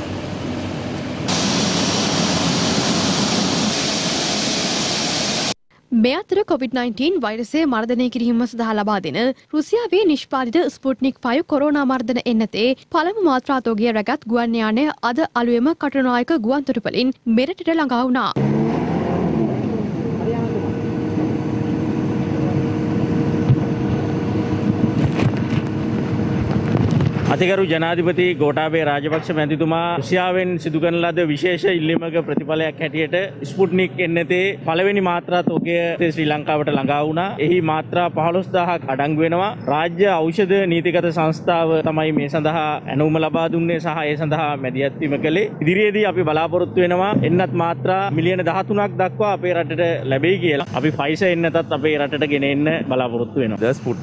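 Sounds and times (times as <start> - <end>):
jet engines rushing: 0.0 - 5.6, 18.4 - 27.6
steady hum: 0.0 - 7.8, 11.6 - 28.5.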